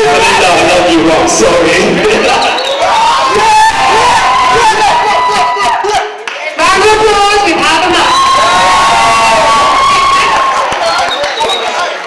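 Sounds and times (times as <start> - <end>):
audience cheering and screaming: 0.0 - 6.0, 7.4 - 12.0
long high-pitched scream: 7.9 - 10.6.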